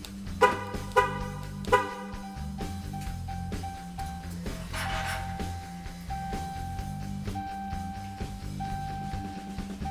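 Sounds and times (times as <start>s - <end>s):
rock music: 0.1s - 9.9s.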